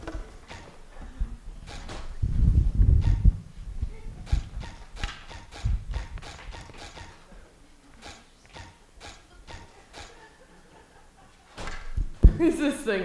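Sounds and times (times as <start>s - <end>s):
heavy low thuds: 0.0s - 7.2s, 11.9s - 12.6s
knocks and thuds: 2.9s - 3.4s, 4.3s - 7.2s.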